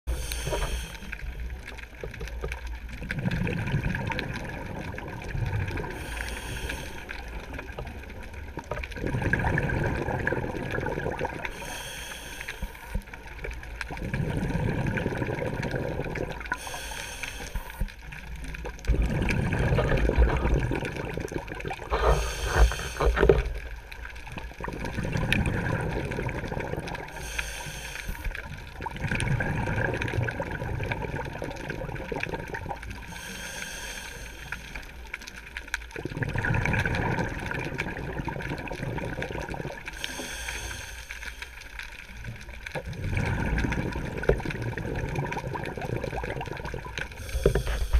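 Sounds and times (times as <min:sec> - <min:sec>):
regulator inhale hiss: 0:00.1 - 0:01.6, 0:05.8 - 0:07.6, 0:11.4 - 0:13.2, 0:16.5 - 0:17.9, 0:21.9 - 0:23.5, 0:27.0 - 0:28.6, 0:33.0 - 0:35.1, 0:39.9 - 0:41.9, 0:47.1 - 0:47.9
exhaled air bubbling underwater: 0:00.1 - 0:47.9.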